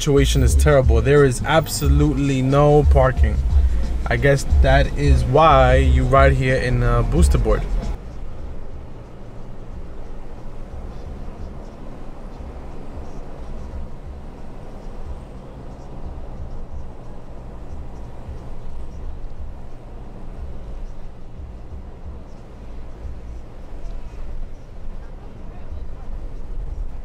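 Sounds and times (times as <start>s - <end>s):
road and engine rumble in a car: 0.0s - 27.0s.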